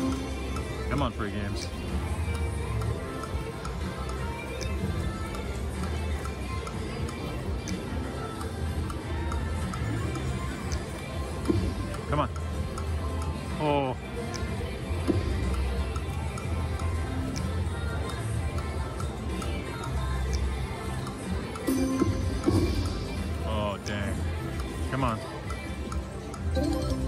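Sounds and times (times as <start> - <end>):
casino hum: 0.0 - 27.0
slot machine game music: 0.0 - 27.0.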